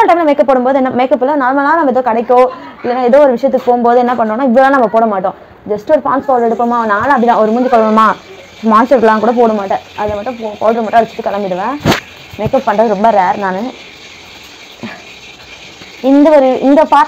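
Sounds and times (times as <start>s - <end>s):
woman talking: 0.0s - 11.8s, 12.4s - 13.8s, 16.0s - 17.0s
faint steady hiss: 5.3s - 17.0s.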